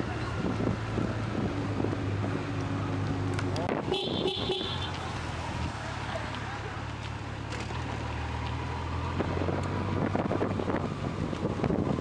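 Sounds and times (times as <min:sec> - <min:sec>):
wind buffeting microphone: 0:08.9 - 0:12.0.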